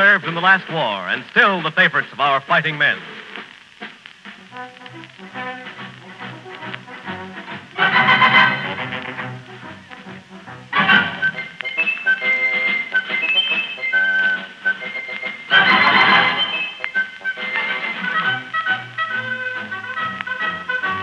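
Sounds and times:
orchestra playing old songs: 4.5 - 21.0.

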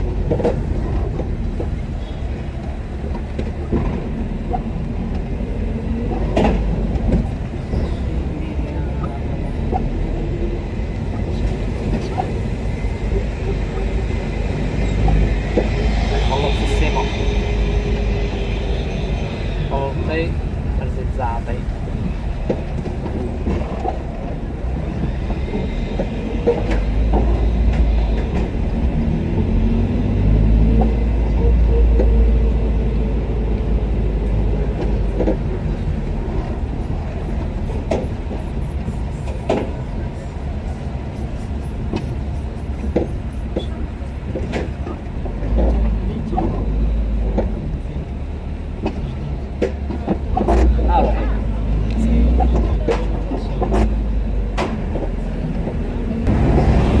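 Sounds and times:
car engine and road rumble: 0.0 - 57.0
indistinct voices: 5.2 - 29.7.

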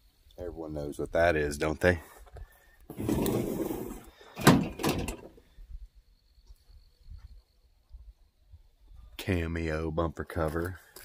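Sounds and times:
plastic scraping over truck bed: 2.9 - 5.3.

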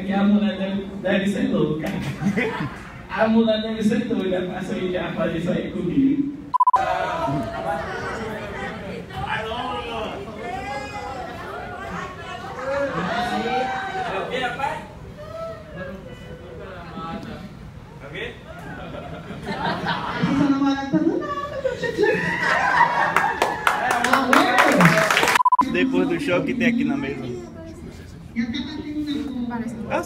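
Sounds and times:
people chattering: 6.6 - 22.2, 23.9 - 30.0
audience clapping: 23.1 - 25.6.

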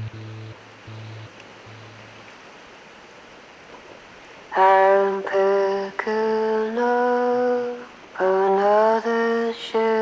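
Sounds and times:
person humming a slow tune: 0.0 - 2.2, 4.6 - 10.0.

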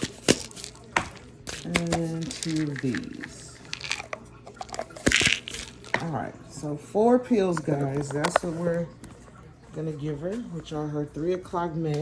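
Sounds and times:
bottles clattering on countertop: 0.0 - 6.1
plastic pill bottles clicking: 0.0 - 6.1.

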